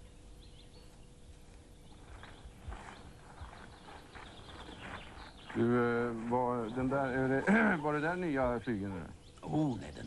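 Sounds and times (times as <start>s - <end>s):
birds chirping faintly: 0.0s - 10.0s.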